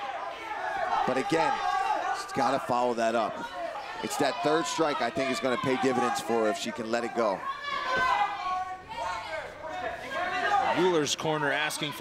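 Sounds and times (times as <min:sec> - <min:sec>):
people shouting instructions: 0:00.0 - 0:12.0.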